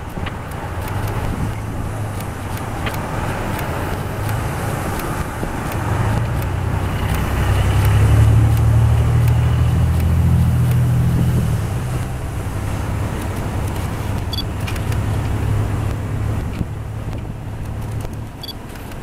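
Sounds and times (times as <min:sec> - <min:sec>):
deep engine rumble: 0:00.0 - 0:18.6
tyres on road: 0:00.0 - 0:19.0
vehicles driving slowly past: 0:00.0 - 0:19.0.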